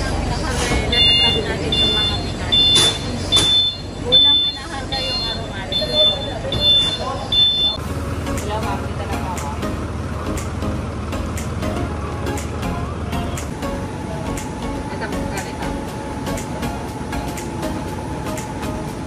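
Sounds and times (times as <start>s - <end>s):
truck engine idling: 0.0s - 19.0s
short high-pitched electronic beeps: 0.9s - 7.8s.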